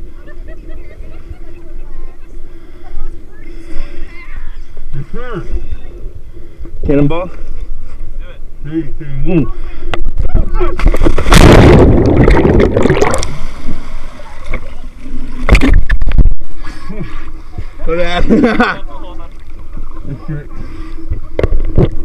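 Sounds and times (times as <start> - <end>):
water sloshing: 10.7 - 22.0
loud splash of water entry: 10.8 - 14.6
rush of water: 10.8 - 16.6.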